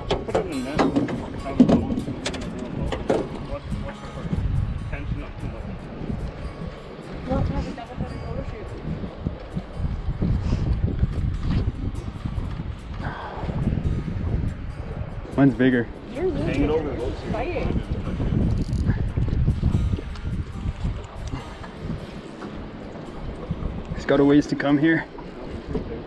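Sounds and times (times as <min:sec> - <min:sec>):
sharp clicks and knocks: 0:00.0 - 0:03.4
wind rumbling on microphone: 0:00.0 - 0:26.0
fishing reel being cranked: 0:18.5 - 0:19.0.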